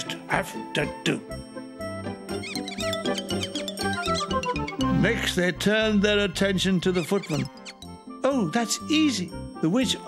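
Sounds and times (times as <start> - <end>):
light background music: 0.0 - 10.0
cartoon mice squeaking: 2.3 - 5.0, 6.8 - 8.0.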